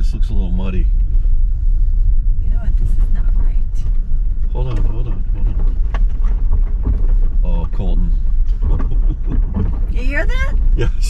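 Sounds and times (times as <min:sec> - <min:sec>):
tyres rumbling over dirt: 0:02.6 - 0:11.0.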